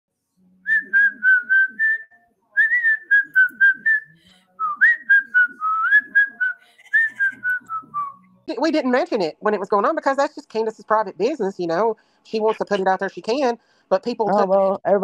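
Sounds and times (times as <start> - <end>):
whistled melody: 0.6 - 8.4.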